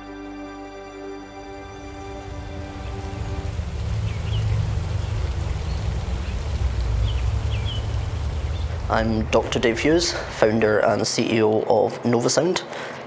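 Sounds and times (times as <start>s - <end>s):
music: 0.0s - 6.0s
bird chirps: 1.6s - 9.0s
fountain splashing into pond: 1.6s - 10.7s.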